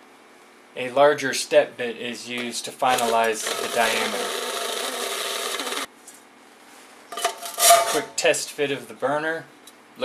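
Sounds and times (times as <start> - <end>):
metallic scraping and clattering: 7.1 - 8.1.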